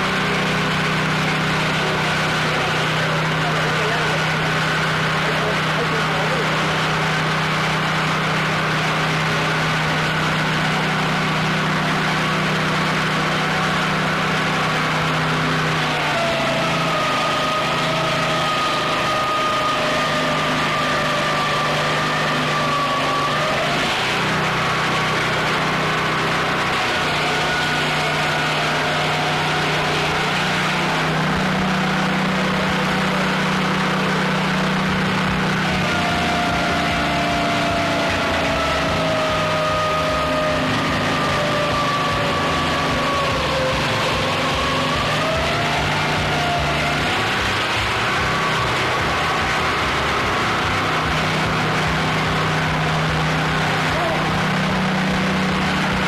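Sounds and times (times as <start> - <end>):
high whine: 0.0 - 56.0
sawmill engine running under load: 0.0 - 56.0.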